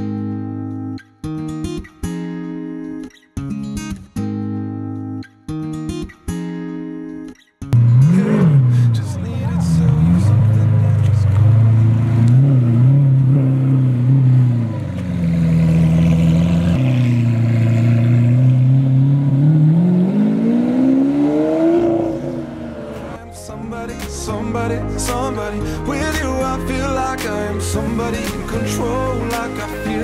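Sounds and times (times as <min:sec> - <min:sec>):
sports car engine revving: 0:07.8 - 0:23.2.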